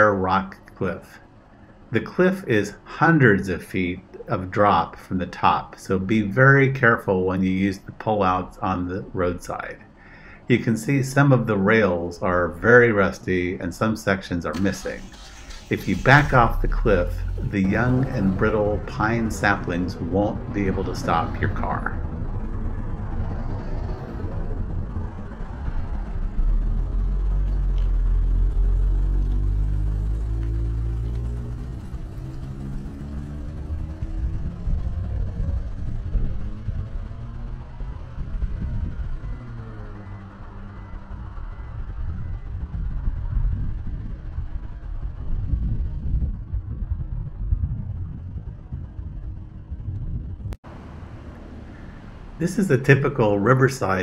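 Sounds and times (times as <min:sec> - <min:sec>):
vehicles passing and accelerating: 0:00.0 - 0:54.0
low rumble: 0:14.5 - 0:54.0.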